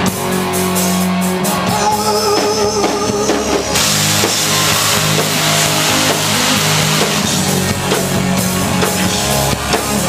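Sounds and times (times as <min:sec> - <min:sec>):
rock band sustained chord: 0:00.0 - 0:10.0
cryo jets hissing: 0:03.8 - 0:07.8.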